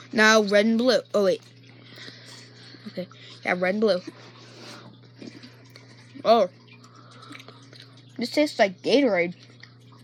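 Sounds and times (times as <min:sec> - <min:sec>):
low steady hum: 0:00.0 - 0:10.0
chewing gummy sweets: 0:01.0 - 0:08.6, 0:09.3 - 0:10.0.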